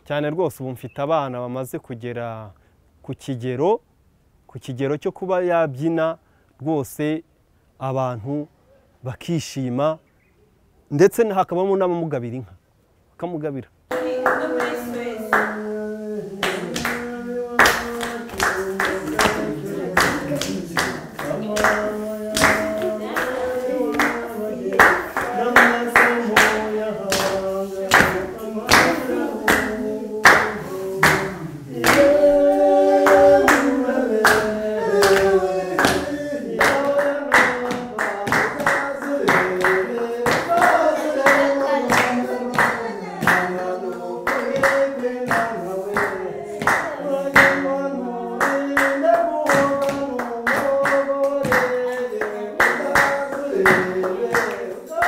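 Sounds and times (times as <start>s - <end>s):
people singing: 13.9s - 55.0s
rhythmic handclapping: 13.9s - 55.0s.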